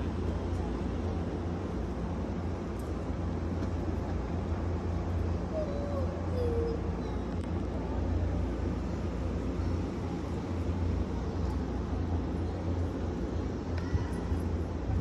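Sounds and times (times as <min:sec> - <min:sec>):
low outdoor rumble: 0:00.0 - 0:15.0.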